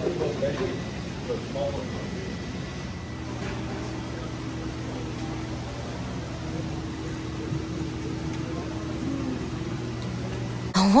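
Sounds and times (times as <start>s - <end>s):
aquarium pumps humming: 0.0s - 11.0s.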